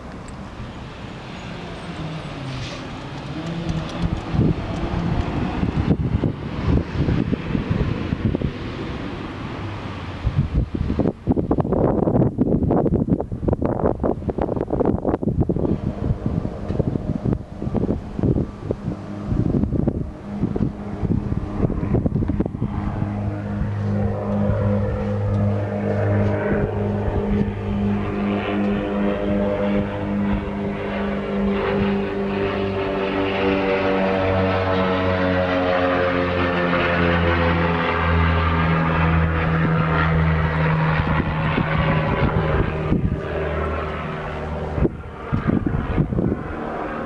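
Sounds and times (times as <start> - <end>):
wind buffeting microphone: 1.2 - 47.0.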